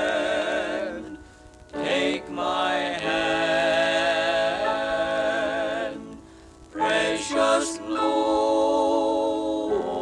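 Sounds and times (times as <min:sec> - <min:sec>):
male quartet singing in harmony: 0:00.0 - 0:10.0.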